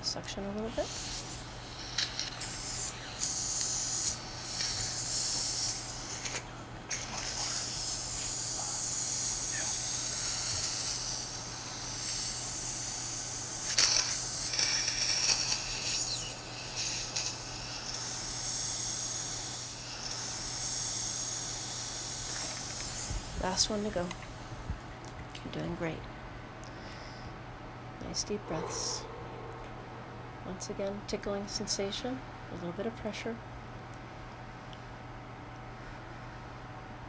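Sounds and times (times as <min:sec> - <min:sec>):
suction aspirator hissing: 0:00.7 - 0:24.5.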